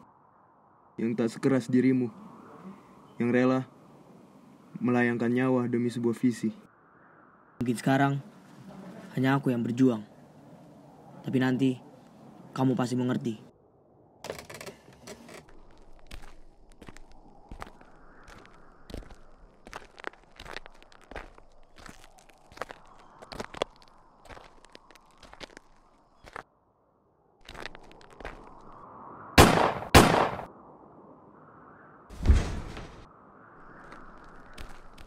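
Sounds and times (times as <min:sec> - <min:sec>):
footsteps on dirt path: 0:15.4 - 0:26.5, 0:27.4 - 0:28.8, 0:33.7 - 0:35.0.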